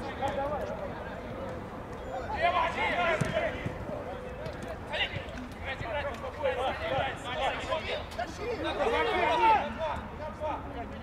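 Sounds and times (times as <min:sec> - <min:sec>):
players shouting: 0:02.0 - 0:04.3, 0:05.8 - 0:10.1
football being kicked: 0:03.1 - 0:03.8.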